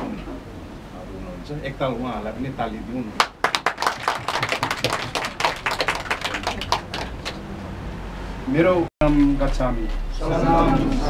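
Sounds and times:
small group clapping: 0:03.2 - 0:07.6.

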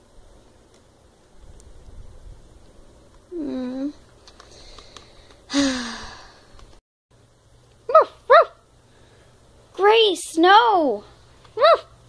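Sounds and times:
high yapping barks: 0:07.9 - 0:08.6, 0:11.6 - 0:12.0.

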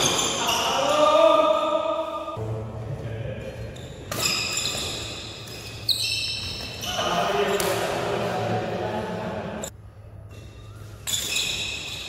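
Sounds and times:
sneakers squeaking on court floor: 0:00.0 - 0:01.1, 0:03.4 - 0:08.1, 0:10.3 - 0:12.0
racket hitting shuttlecock: 0:04.0 - 0:06.8, 0:07.5 - 0:08.1.

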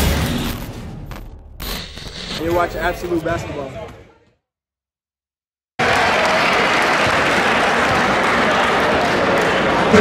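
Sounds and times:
crowd applauding: 0:05.8 - 0:10.0.

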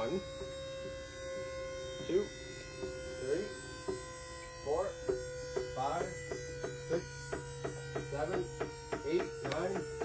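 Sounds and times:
electric motor humming: 0:00.0 - 0:10.0.

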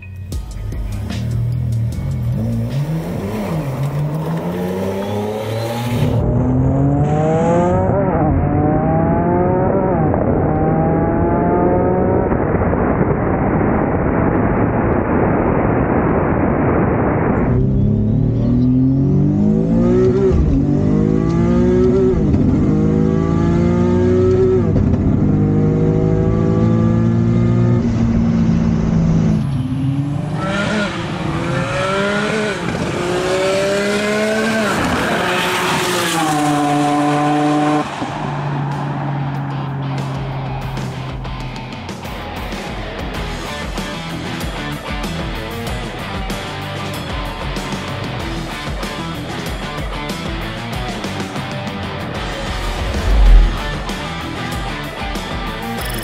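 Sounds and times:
car engine revving through gears: 0:02.2 - 0:12.4, 0:17.5 - 0:40.2, 0:52.2 - 0:54.0.

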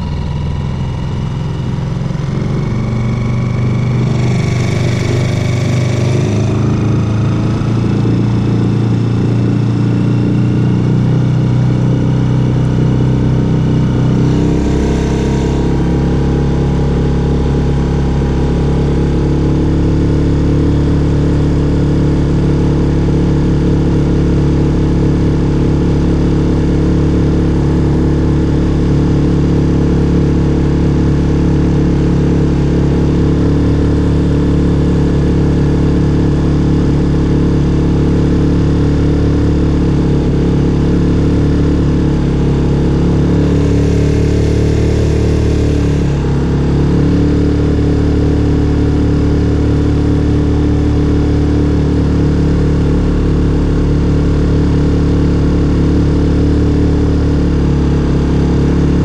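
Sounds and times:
outboard motor running: 0:00.0 - 0:59.0.

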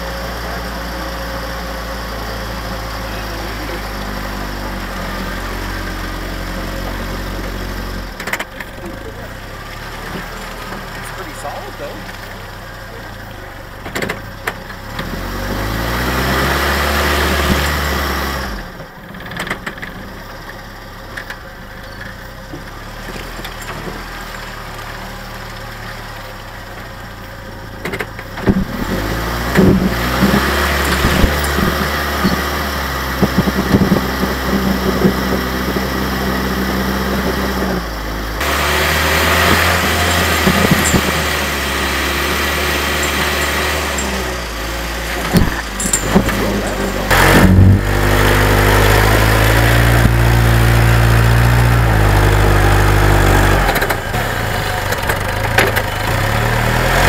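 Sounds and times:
jeep engine running: 0:00.0 - 0:57.0
jeep knocks and rattles: 0:06.7 - 0:37.8, 0:38.4 - 0:57.0.

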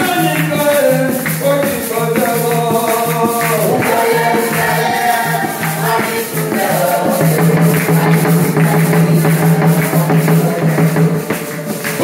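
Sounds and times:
hand drums beaten fast: 0:00.0 - 0:12.0
hand-clapping: 0:00.0 - 0:12.0
high rattle: 0:00.0 - 0:12.0.

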